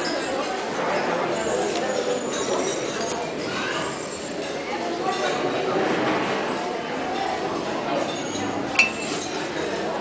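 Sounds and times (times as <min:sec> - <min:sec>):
indistinct chatter of many people: 0:00.0 - 0:10.0
crockery clinking: 0:01.9 - 0:03.3, 0:08.0 - 0:09.8.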